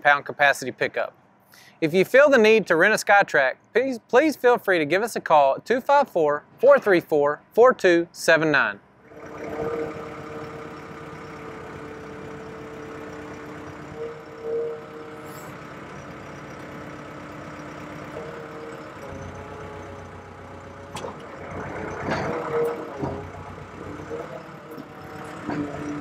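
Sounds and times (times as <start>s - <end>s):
diesel engine idling: 9.0s - 26.0s.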